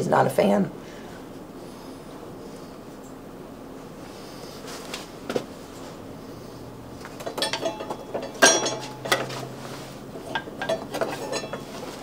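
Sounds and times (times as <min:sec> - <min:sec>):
metal hand tools clinking: 0:07.2 - 0:09.6, 0:10.2 - 0:12.0.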